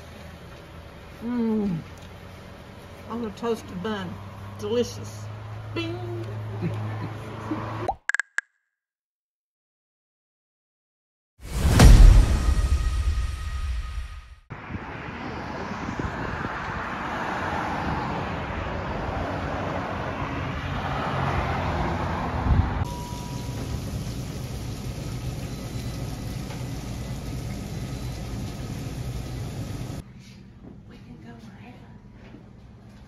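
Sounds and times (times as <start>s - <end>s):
road traffic passing: 0.0s - 7.9s, 14.5s - 30.2s.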